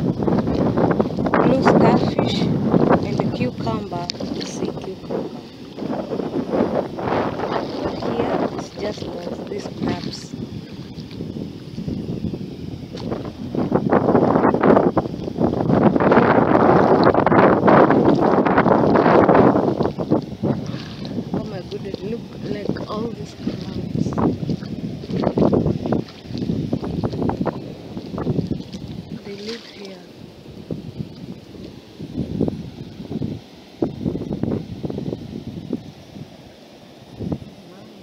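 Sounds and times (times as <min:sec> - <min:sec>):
sea water washing over shore: 0:00.0 - 0:38.0
wind on microphone: 0:00.0 - 0:38.0.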